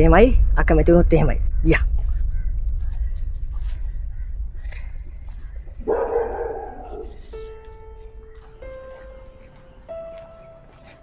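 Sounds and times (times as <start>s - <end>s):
dog barking: 5.8s - 7.5s.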